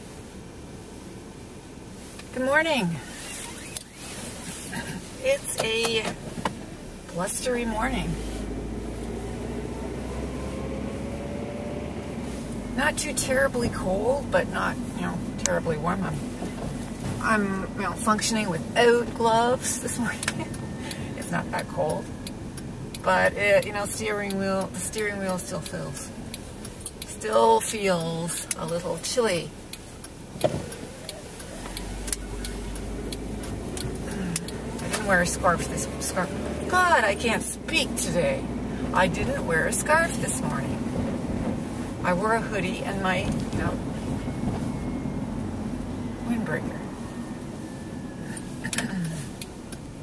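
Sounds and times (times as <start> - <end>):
car engine rumble inside cabin: 0.0 - 50.0
road noise: 0.0 - 50.0
turn signal ticking: 0.0 - 50.0.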